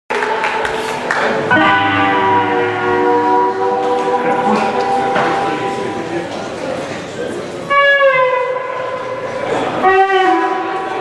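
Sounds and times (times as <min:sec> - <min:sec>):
blues band playing live: 0:01.4 - 0:06.4.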